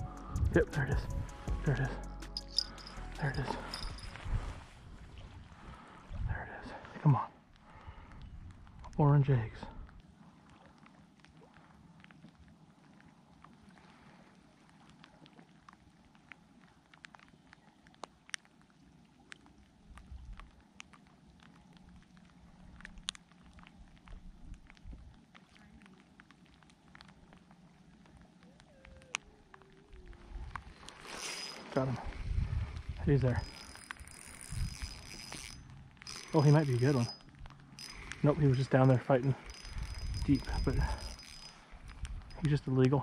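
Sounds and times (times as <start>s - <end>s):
wind rumble on microphone: 0.0s - 1.9s, 3.2s - 6.7s, 29.9s - 30.9s, 31.8s - 36.0s, 39.3s - 43.0s
rod and reel handling noise: 1.7s - 4.7s, 29.0s - 43.0s
faint clicks: 9.8s - 31.7s.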